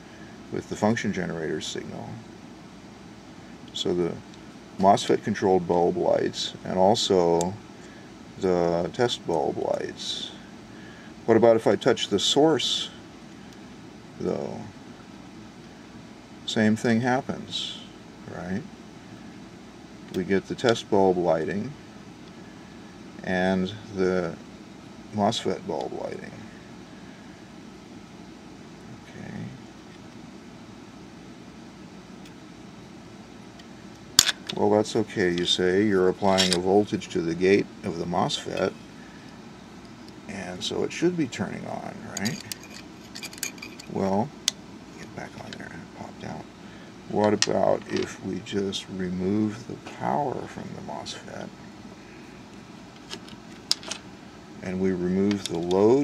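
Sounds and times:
background hiss: 0.0s - 56.0s
faint background hum: 0.0s - 56.0s
clips dropped on wooden bench: 34.2s - 34.6s.

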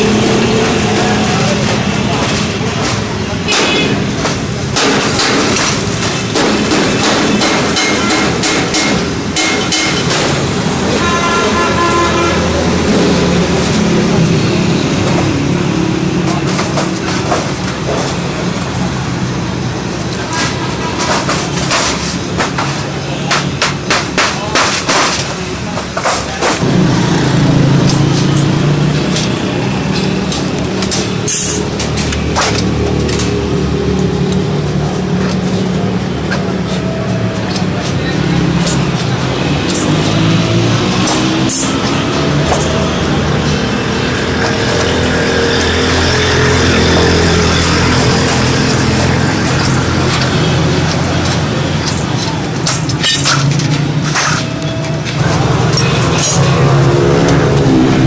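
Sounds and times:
background traffic: 0.0s - 58.0s.

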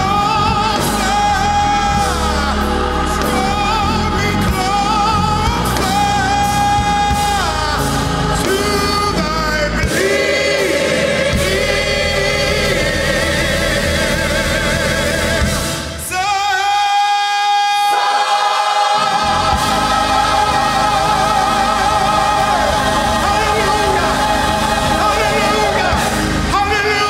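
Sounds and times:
man singing gospel: 0.0s - 18.2s, 18.9s - 27.0s
choir singing: 0.0s - 27.0s.

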